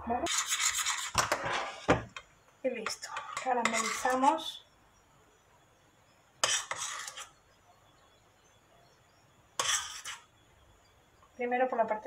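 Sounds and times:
metal utensil scraping pot: 0.2s - 1.9s, 2.8s - 4.5s, 6.4s - 7.4s, 9.6s - 10.3s.

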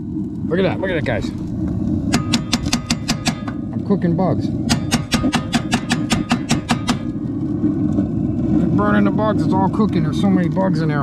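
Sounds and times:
gas burner low rumble: 0.0s - 11.0s.

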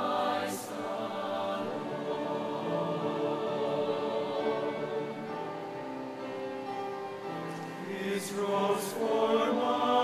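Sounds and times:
mixed choir singing held chords: 0.0s - 10.0s.

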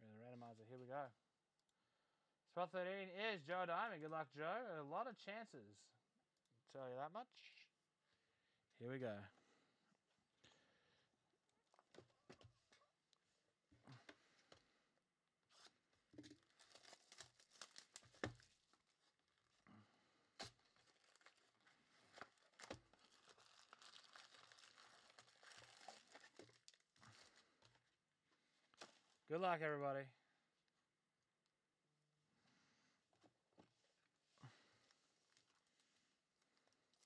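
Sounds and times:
plastic wrap tearing and crinkling: 15.5s - 19.6s, 20.4s - 27.7s.

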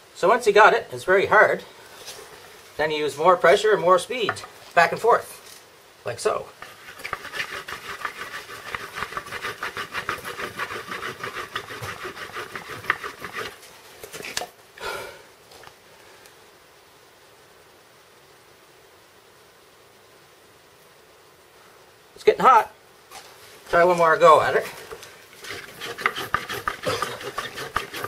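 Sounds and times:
wood-on-wood rubbing: 6.6s - 14.4s, 24.6s - 28.0s.

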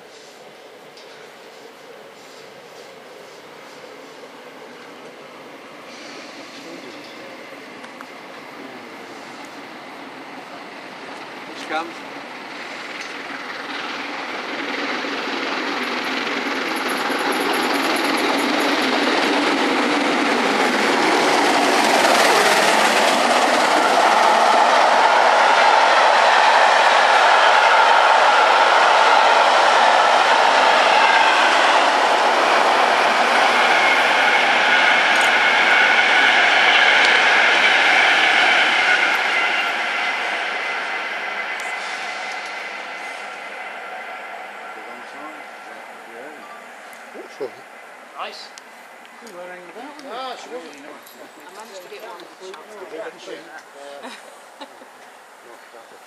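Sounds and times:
steam train passing at speed: 0.0s - 56.0s.

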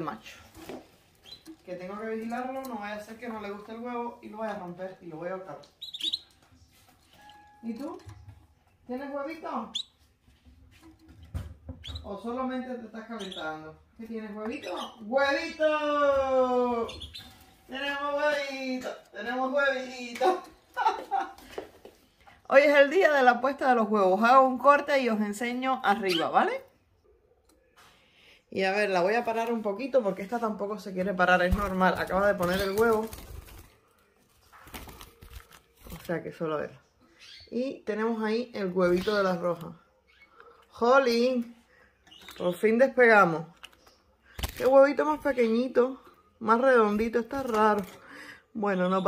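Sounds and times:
bird chirping: 1.2s - 1.6s, 5.6s - 8.3s, 8.9s - 10.0s, 13.0s - 13.8s, 16.8s - 17.5s.

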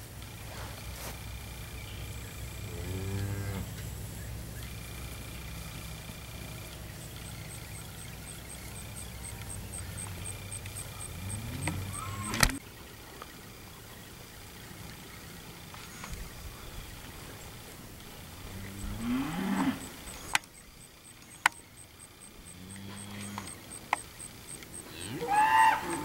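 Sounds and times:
steers mooing: 7.7s - 12.6s, 18.3s - 20.3s, 22.4s - 26.0s.

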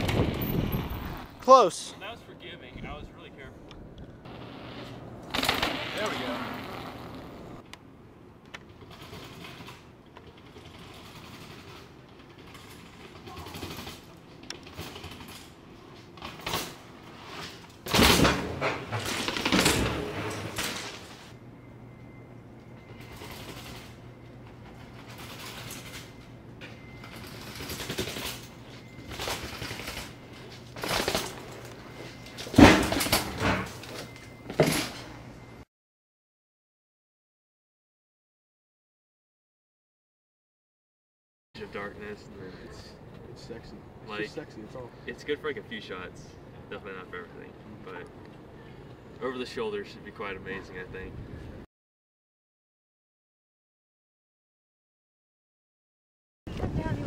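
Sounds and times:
bike tyre noise: 4.2s - 7.6s
bike landing thumps: 17.4s - 21.2s, 32.4s - 33.9s.

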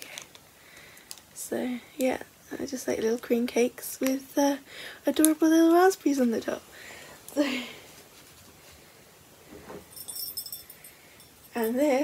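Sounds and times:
necklace chain jingling: 9.8s - 12.0s.

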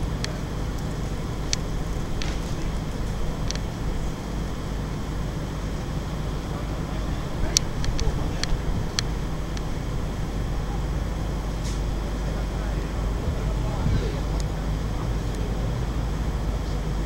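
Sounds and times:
low outdoor rumble: 0.0s - 17.0s.

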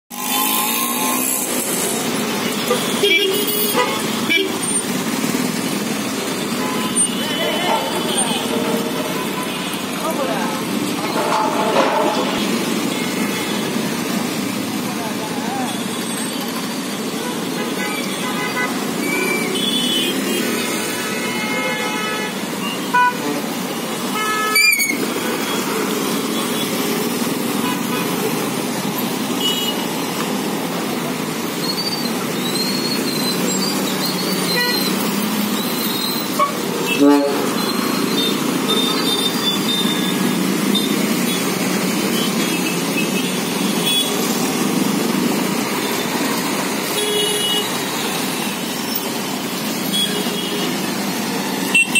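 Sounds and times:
vehicle engines running: 0.1s - 20.8s, 22.4s - 51.9s
car horns honking: 2.4s - 4.8s, 6.3s - 10.3s, 17.2s - 25.8s, 29.4s - 30.0s, 34.1s - 44.4s, 46.8s - 47.9s, 51.7s - 51.9s.

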